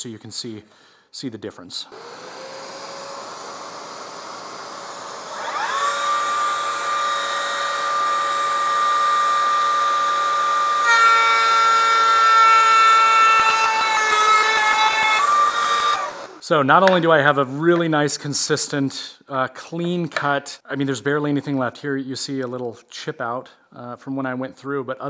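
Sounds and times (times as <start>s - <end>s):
dust extractor running: 1.9s - 16.4s
router bit cutting wood: 1.9s - 16.4s
router whining: 1.9s - 16.4s.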